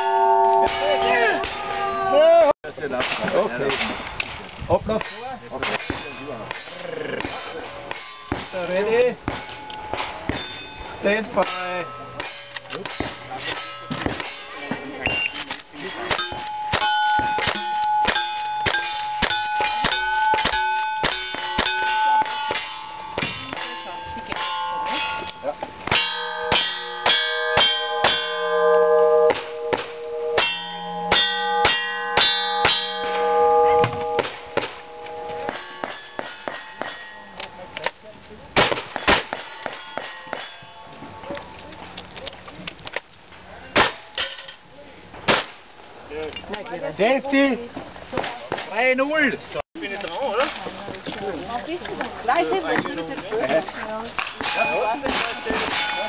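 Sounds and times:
bullets clanging on steel targets: 5.0s - 38.0s, 38.6s - 41.7s, 43.8s - 44.7s, 54.2s - 56.0s
shotgun shots: 38.6s - 40.4s.

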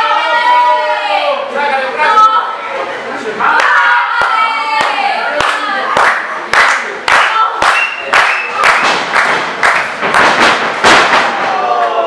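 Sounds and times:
crowd clapping in rhythm: 3.6s - 11.2s.

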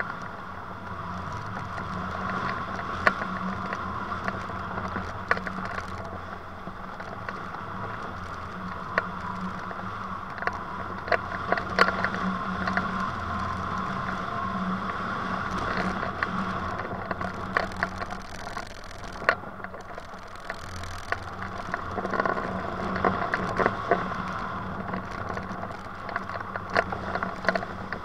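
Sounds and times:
light ticks and rattles: 0.0s - 28.0s
low steady hum: 0.0s - 28.0s.

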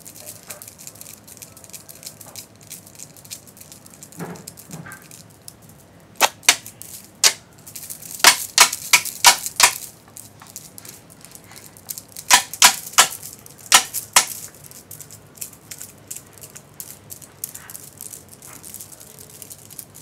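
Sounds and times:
sharp clicks: 6.2s - 7.4s, 8.2s - 9.9s, 12.2s - 14.5s.

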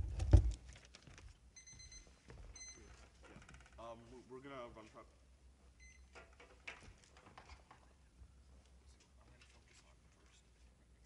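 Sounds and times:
thumps on microphone: 0.0s - 0.6s.

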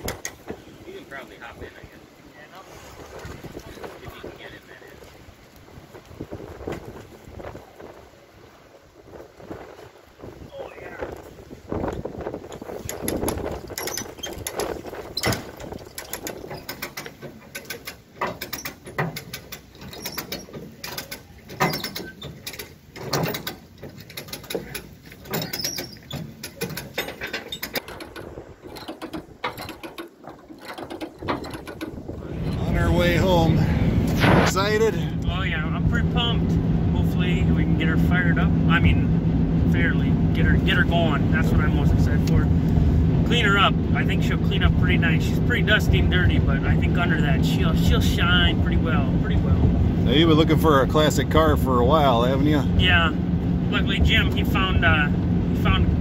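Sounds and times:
chain winch metallic clicks and clanks: 11.8s - 33.2s.

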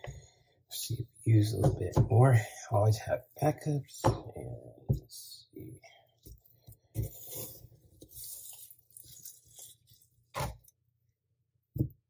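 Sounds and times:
scoop scraping frozen ice cream: 7.0s - 10.1s.

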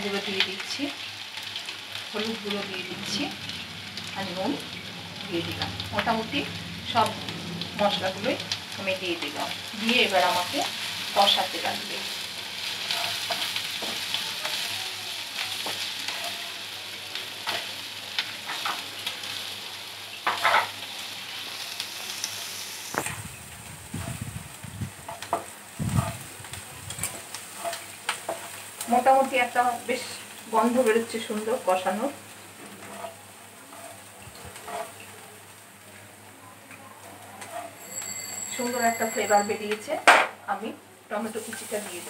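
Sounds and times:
onions sizzling in a pan: 0.0s - 42.0s
spatula scraping a pan: 12.7s - 14.7s, 15.6s - 16.5s, 20.3s - 20.7s, 25.0s - 26.3s, 26.9s - 28.8s, 32.6s - 35.0s, 37.3s - 39.1s.

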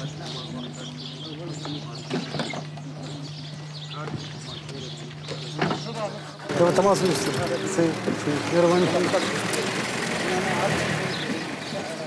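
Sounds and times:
birds chirping: 0.0s - 12.0s
distant voices: 0.0s - 12.0s.

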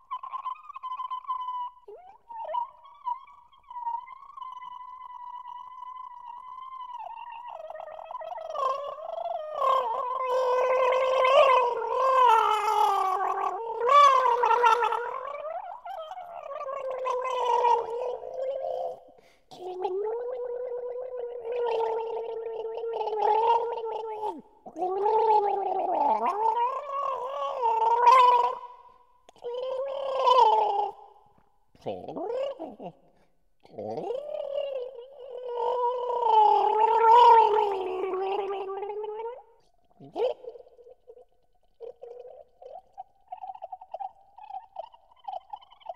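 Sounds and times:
person gargling pitched notes: 0.0s - 28.6s, 29.3s - 31.0s, 31.8s - 45.9s.

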